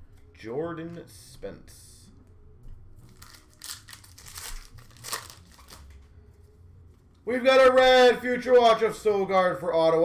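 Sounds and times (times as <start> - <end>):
wrapper crinkling and tearing: 3.0 - 6.1.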